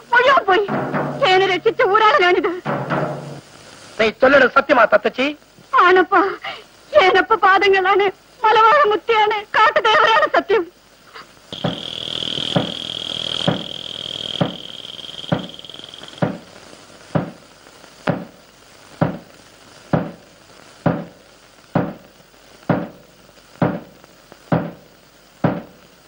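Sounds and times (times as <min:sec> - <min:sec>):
slow steady drum beat: 0:00.5 - 0:01.8, 0:02.5 - 0:03.6, 0:11.5 - 0:26.0
high held note: 0:11.5 - 0:16.7.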